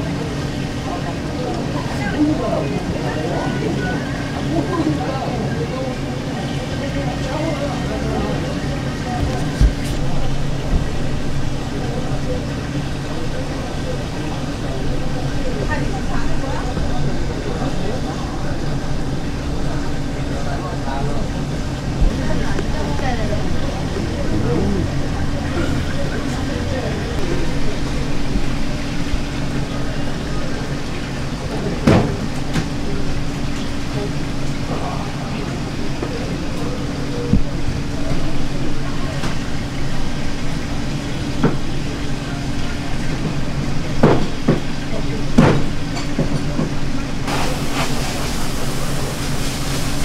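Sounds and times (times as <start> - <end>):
indistinct voices: 0.0 - 32.8
low motor hum: 7.7 - 34.8.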